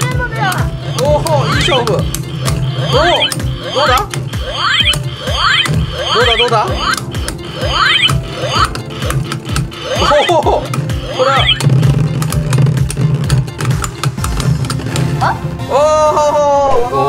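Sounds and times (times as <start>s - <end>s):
low spinning hum: 0.3s - 15.2s
toy swooping electronic tone: 0.8s - 11.8s.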